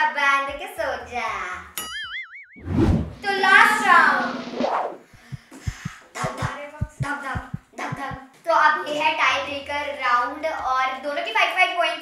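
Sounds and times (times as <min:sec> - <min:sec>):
cartoon boing sound effect: 0:01.8 - 0:02.6
low rushing whoosh: 0:02.6 - 0:05.8.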